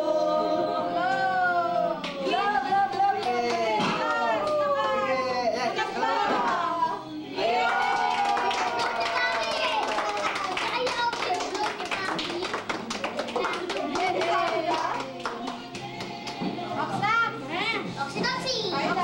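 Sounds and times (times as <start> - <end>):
people clapping: 3.0 - 4.9, 7.4 - 16.6
excited children's voices: 8.5 - 14.5.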